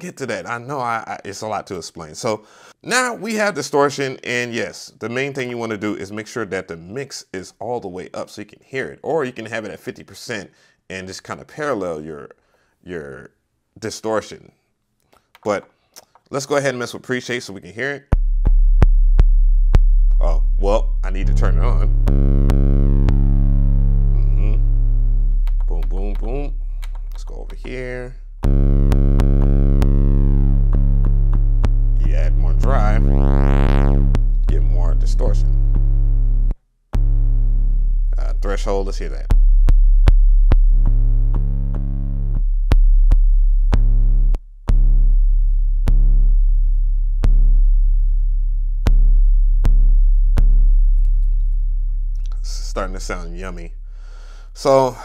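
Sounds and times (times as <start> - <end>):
person speaking: 15.4 - 18.1, 20.2 - 22.0, 24.2 - 24.7, 25.5 - 28.2, 32.0 - 35.7, 38.2 - 39.3, 52.3 - 53.8
distorted deep bass note: 18.1 - 55.0
drum machine hits: 18.2 - 46.5, 47.2 - 47.8, 48.8 - 51.2
clicks: 25.3 - 27.8.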